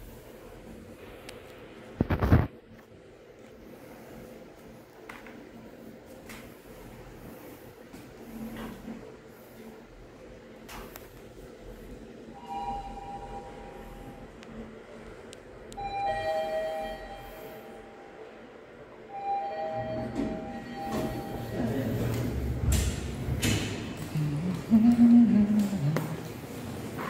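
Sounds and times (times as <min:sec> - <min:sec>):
elevator low rumble: 0:00.0 - 0:27.0
elevator two-note chime: 0:15.8 - 0:17.9, 0:19.1 - 0:22.0.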